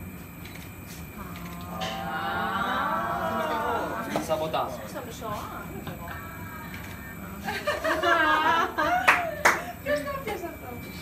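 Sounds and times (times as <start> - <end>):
drawn-out vocal exclamation: 1.4 - 4.2
sharp hand claps: 9.1 - 9.7.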